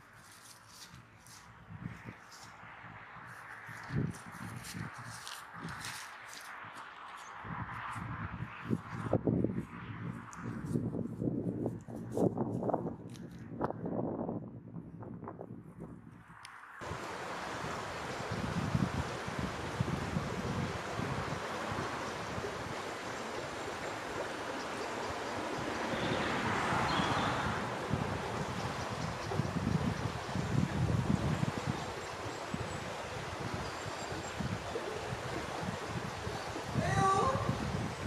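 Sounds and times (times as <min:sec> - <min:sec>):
wind buffeting microphone: 0:01.6 - 0:06.0, 0:07.2 - 0:38.0.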